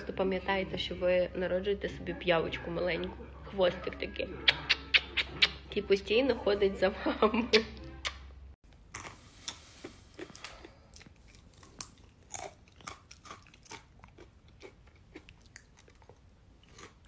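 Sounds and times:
apple chips crunching: 8.7 - 17.0.

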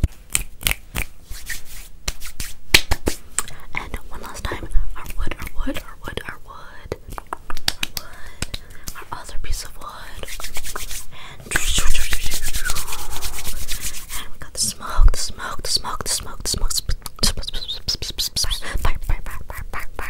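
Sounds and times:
palms rubbing together: 0.6 - 3.3, 7.1 - 14.3
soft whispering: 3.5 - 7.0, 7.9 - 20.0
finger snaps flicks and taps: 7.0 - 9.0.

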